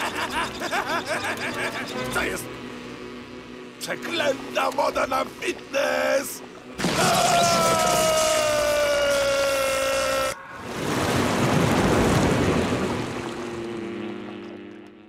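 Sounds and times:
crackling electric buzz: 0.0 - 10.4, 11.1 - 15.0
loud rushing buzz: 0.0 - 15.0
long high scream: 6.8 - 10.6.

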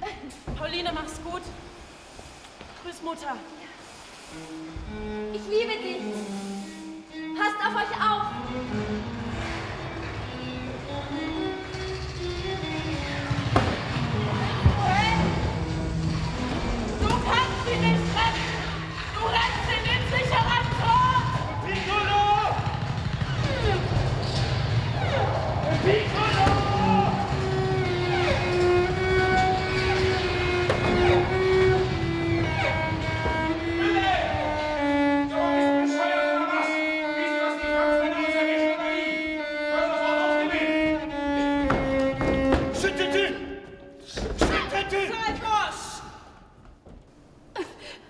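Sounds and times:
cello bowed melody: 4.2 - 21.8, 24.8 - 43.9
low rumble: 8.4 - 35.2.

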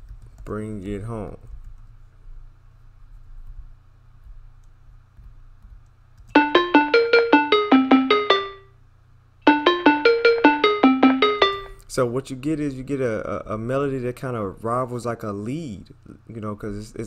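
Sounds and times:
synth keyboard melody: 6.4 - 8.7, 9.5 - 11.8.

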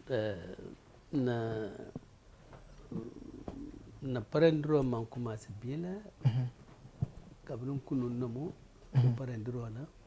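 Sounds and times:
man humming low: 2.9 - 4.0.

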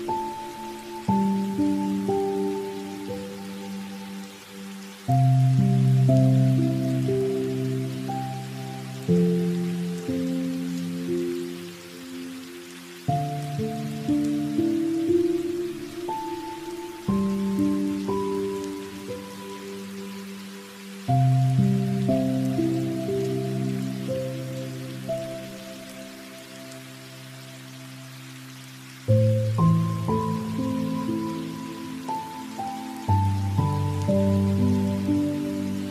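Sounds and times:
faint hiss: 0.0 - 35.9.

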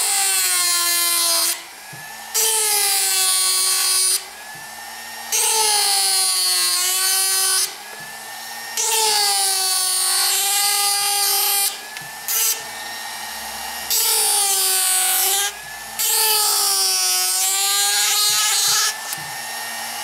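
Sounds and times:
power carver cutting wood: 0.0 - 20.0.

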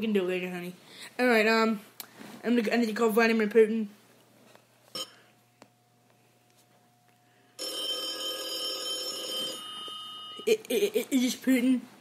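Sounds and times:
telephone ringing: 4.9 - 5.3, 7.6 - 10.5.

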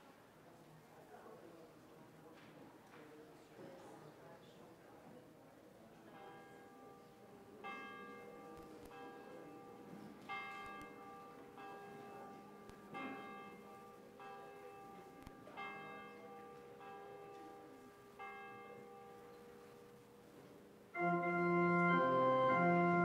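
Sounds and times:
church bell tolling: 6.1 - 20.4.

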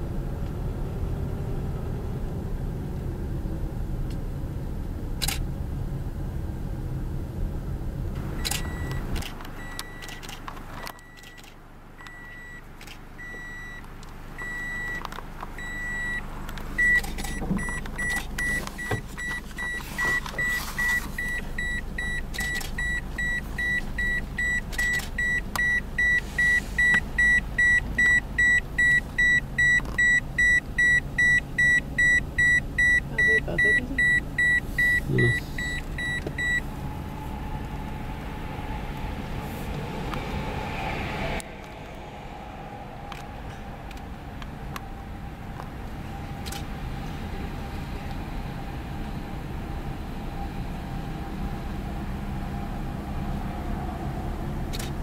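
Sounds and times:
low car rumble: 0.0 - 55.0
car warning chime beeping: 8.3 - 36.7.

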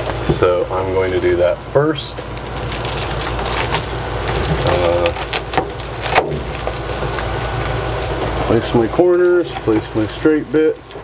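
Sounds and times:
bubble-foil crinkling: 0.0 - 11.0
steady low hum: 0.0 - 11.0.

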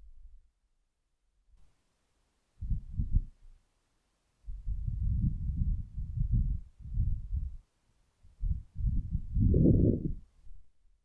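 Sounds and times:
muffled low thumps and rumbles: 2.6 - 3.4, 4.5 - 7.6, 8.3 - 10.2.

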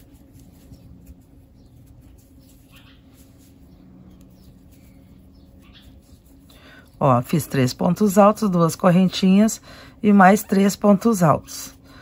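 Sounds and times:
string scratching and rustling: 0.0 - 7.9
low steady hum: 0.0 - 12.0
squeaky scrapes: 0.2 - 6.4.

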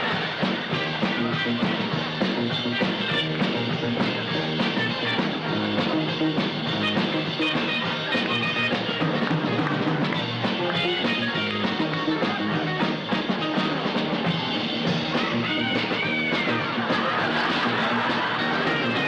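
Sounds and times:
guitar: 0.0 - 19.0
rock dance music: 0.0 - 19.0
steady drum beat: 0.0 - 19.0.

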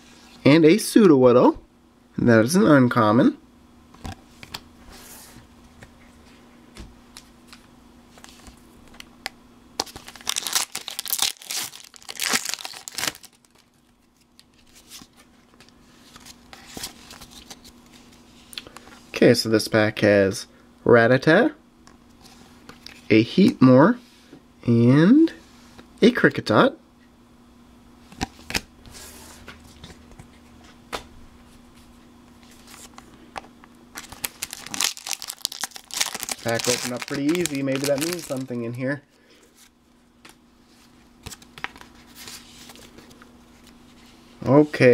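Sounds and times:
faint steady hum: 0.0 - 44.9
foil wrapper crinkling and tearing: 9.8 - 15.0, 34.0 - 38.7
papery rustle: 34.0 - 38.6.

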